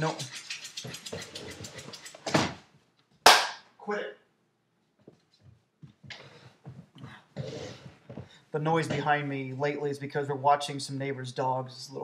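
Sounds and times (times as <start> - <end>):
loud sharp smack: 3.3 - 3.6.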